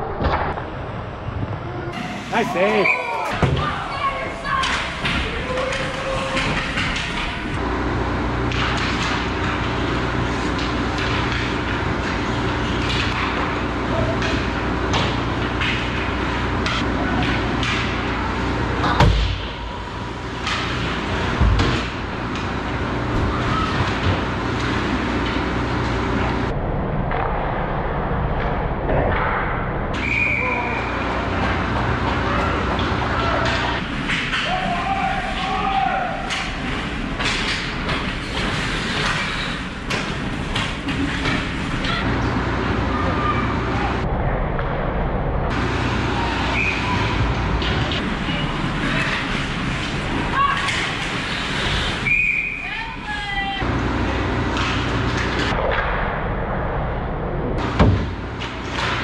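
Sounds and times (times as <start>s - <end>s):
voices: 1.6s - 7.6s, 30.0s - 36.6s, 41.8s - 44.1s, 45.5s - 55.2s
sticks and puck clacking: 4.4s - 7.6s, 8.4s - 19.0s, 30.0s - 44.0s, 45.5s - 52.3s, 54.3s - 55.9s, 57.8s - 59.0s
skates scraping ice: 30.3s - 43.7s, 45.6s - 52.6s.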